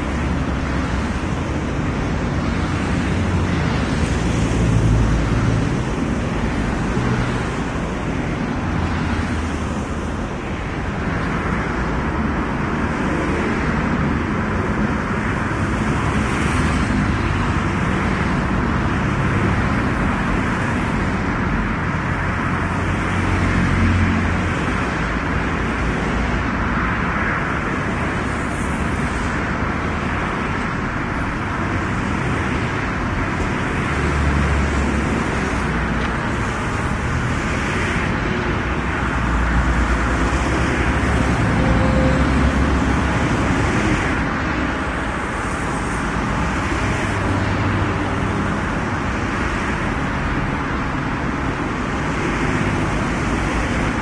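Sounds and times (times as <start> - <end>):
deep rumble of passing vehicles: 0.0 - 54.0
motorway traffic roar: 0.0 - 54.0.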